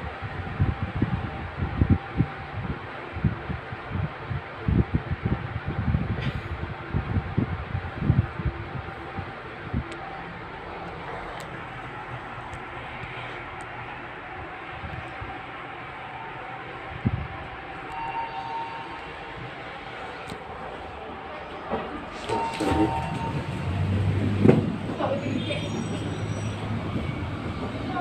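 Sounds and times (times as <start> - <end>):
lift cabin hum and rumble: 0.0 - 28.0.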